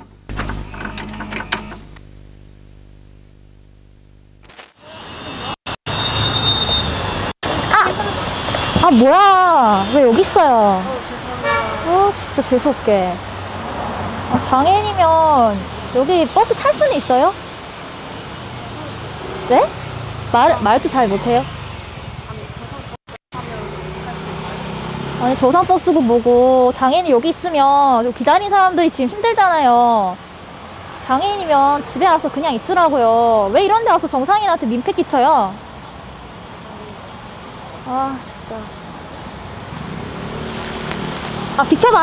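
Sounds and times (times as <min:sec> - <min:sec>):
city street traffic: 0:04.7 - 0:42.0
steady high squeal: 0:04.8 - 0:07.3.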